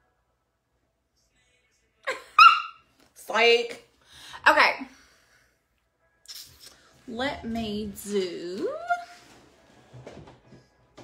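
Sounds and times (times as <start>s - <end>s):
dog yelping: 2.3s - 2.8s.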